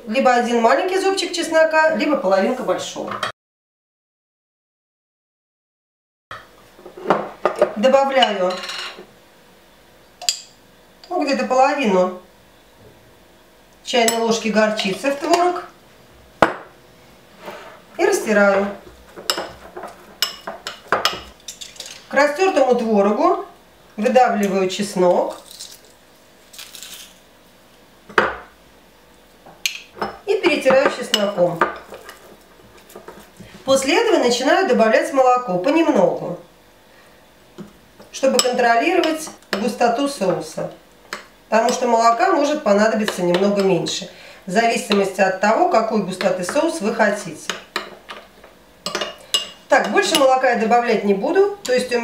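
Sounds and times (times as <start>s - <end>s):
woman speaking: 0.0s - 3.2s, 7.7s - 8.6s, 11.1s - 12.3s, 13.8s - 15.7s, 18.0s - 18.8s, 22.1s - 25.4s, 30.2s - 31.8s, 33.6s - 36.5s, 38.1s - 40.8s, 41.5s - 47.6s, 49.7s - 52.0s
metal spoon clinking ceramic bowl: 48.8s - 50.2s.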